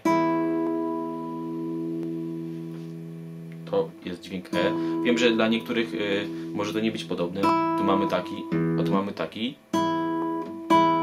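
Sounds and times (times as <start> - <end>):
guitar strings plucked and ringing: 0.0 - 11.0.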